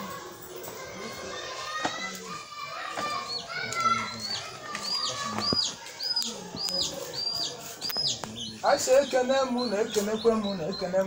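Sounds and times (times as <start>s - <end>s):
children's voices: 0.0s - 10.2s.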